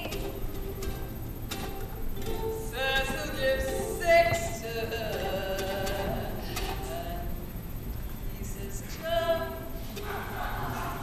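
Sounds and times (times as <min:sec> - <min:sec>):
woman singing: 0:00.0 - 0:00.4, 0:02.3 - 0:07.5, 0:08.3 - 0:11.0
ukulele playing softly: 0:00.0 - 0:07.0.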